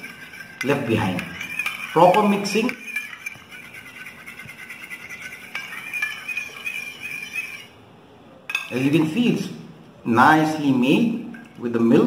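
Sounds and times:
spoon clinking on bowl: 0.0s - 7.7s, 8.5s - 9.0s, 11.3s - 11.6s
spoon squeaking against steel bowl: 0.0s - 7.8s, 8.5s - 8.9s.

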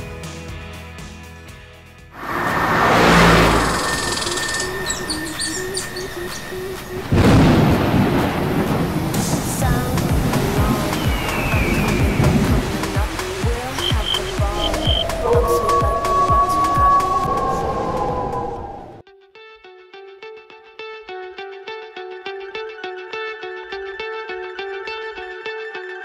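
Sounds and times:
loud rushing noise: 2.2s - 9.5s
steady music beat: 10.0s - 17.1s.

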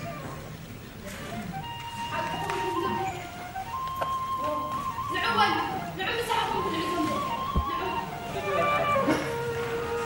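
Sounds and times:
electronic melody of held notes: 1.5s - 10.0s.

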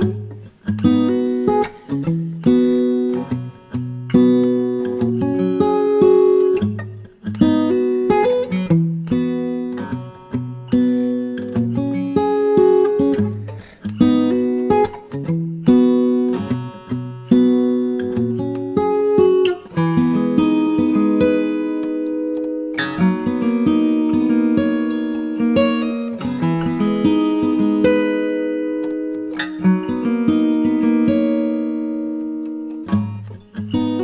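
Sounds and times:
acoustic guitar chords: 0.0s - 34.0s.

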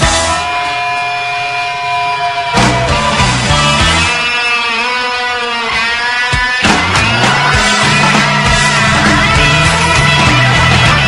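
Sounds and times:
blues-rock band playing: 0.0s - 11.0s
held electric guitar note: 0.0s - 11.0s.

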